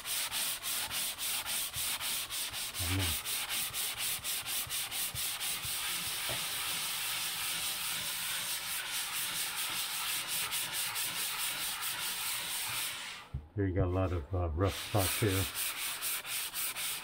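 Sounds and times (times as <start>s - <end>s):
sanding block scratching drywall: 0.0s - 13.3s, 13.9s - 17.0s.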